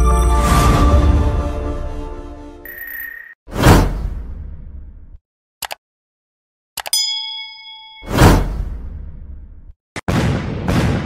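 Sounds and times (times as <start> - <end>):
bell-like ding: 6.9 - 8.3.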